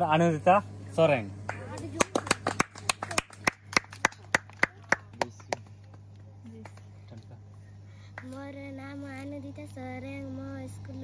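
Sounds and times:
people clapping: 1.4 - 7.3.

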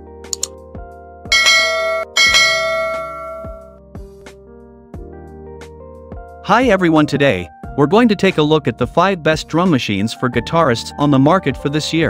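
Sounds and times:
bright bell dings: 1.3 - 3.8
music bed with low drum hits: 1.3 - 4.3.

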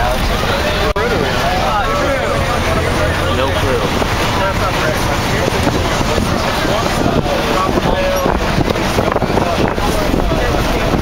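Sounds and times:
children talking: 0.0 - 11.0
engine and road rumble: 0.0 - 11.0
wind rushing through windows: 0.0 - 11.0.

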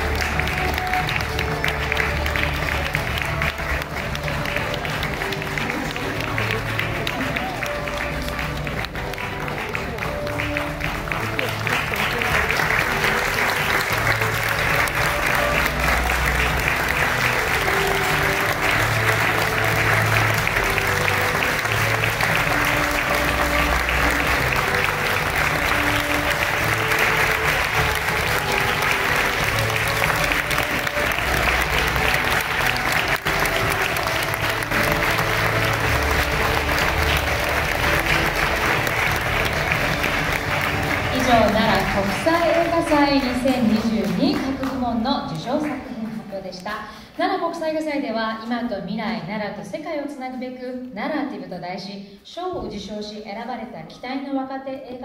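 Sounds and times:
audience applauding: 0.0 - 46.9
background music: 0.0 - 55.0.

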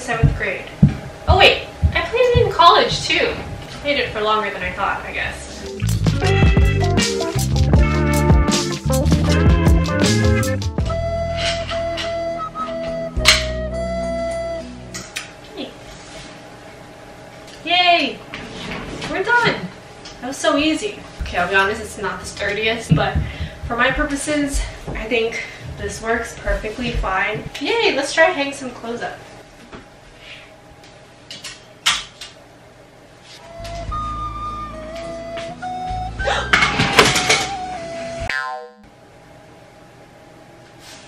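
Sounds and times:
background music: 5.4 - 15.0, 33.4 - 38.3.

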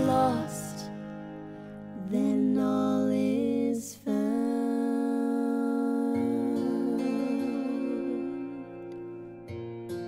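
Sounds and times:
woman singing lullaby: 2.0 - 8.9.

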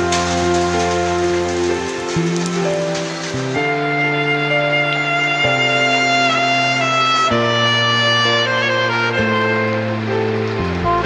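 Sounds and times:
rain falling on ground: 0.0 - 11.0
slow music of held notes: 0.0 - 11.0.

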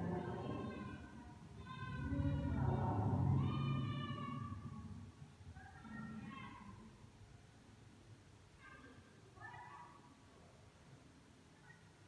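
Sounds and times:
faint high-pitched cry: 0.0 - 5.0, 5.6 - 6.9, 8.6 - 10.2
low steady hum: 0.0 - 9.4.

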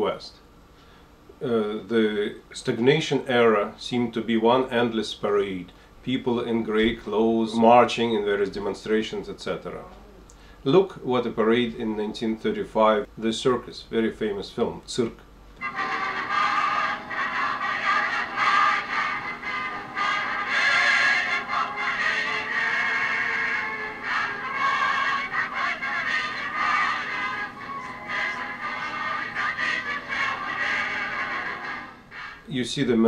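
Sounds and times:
old film soundtrack music: 15.6 - 32.4.

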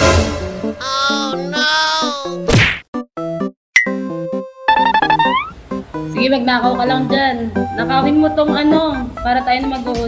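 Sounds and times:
whoosh and whack effect: 2.5 - 2.8.

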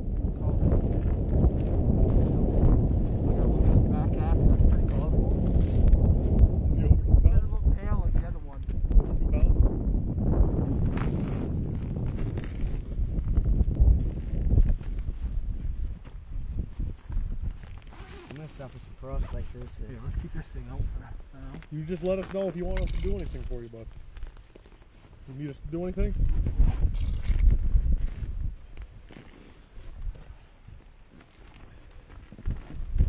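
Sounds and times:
wind buffeting microphone: 0.0 - 24.4, 25.2 - 29.2, 29.8 - 33.0.

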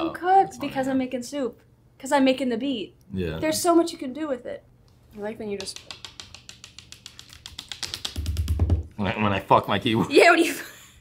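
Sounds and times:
rapid keyboard clicking: 5.6 - 8.8.

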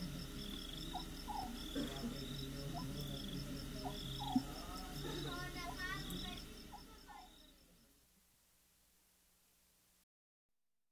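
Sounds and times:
tape hiss: 0.0 - 10.0.

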